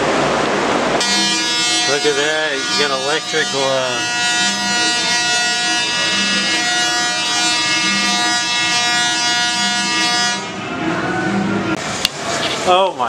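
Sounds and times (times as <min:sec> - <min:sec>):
tesla coil electric buzz: 0:00.9 - 0:10.7.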